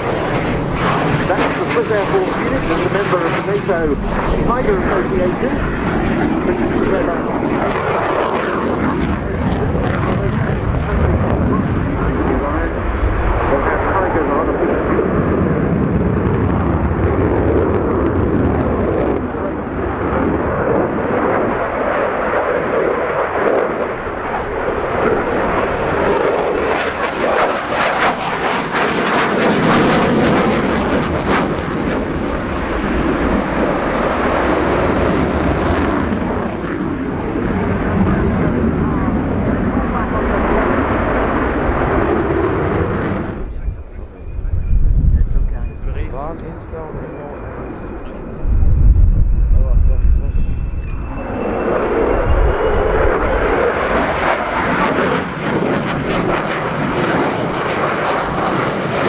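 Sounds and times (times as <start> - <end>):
jet engine crackling: 0.0 - 59.0
jet engine roar: 0.0 - 59.0
commentator speaking over loudspeaker: 1.2 - 6.0, 6.7 - 15.1, 43.4 - 48.3.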